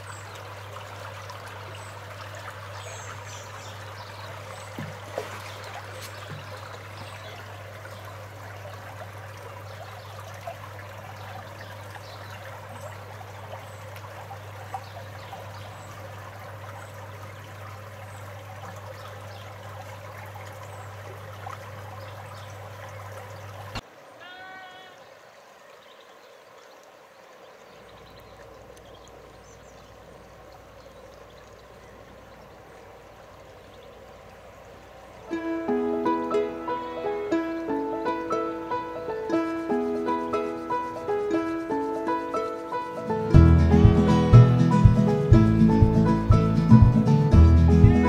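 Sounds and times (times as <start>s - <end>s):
stream trickling over stones: 0.0s - 46.9s
sheep bleating: 24.2s - 25.0s.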